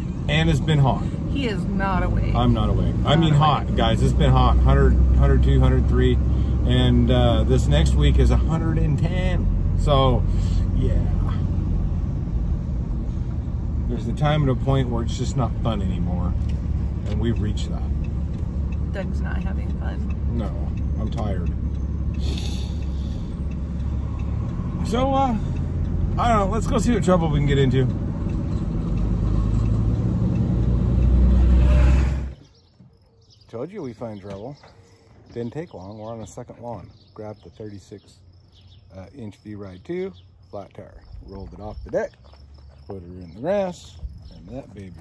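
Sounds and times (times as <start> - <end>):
vehicle low rumble: 0.0 - 45.0.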